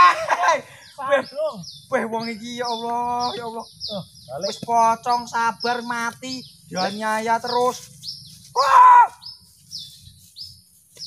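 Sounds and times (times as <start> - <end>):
small bird chirping: 0.5 - 11.0
person crying out: 8.6 - 9.2.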